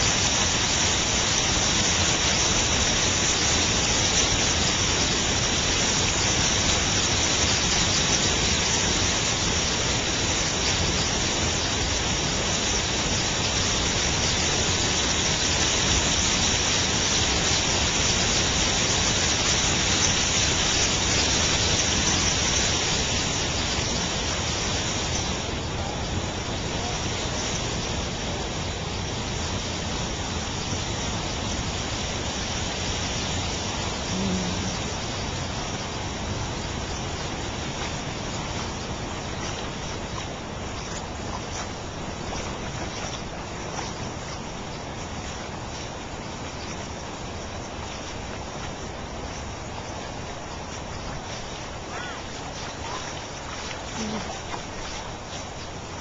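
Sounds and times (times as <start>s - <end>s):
creek water running over rocks: 0.0s - 56.0s.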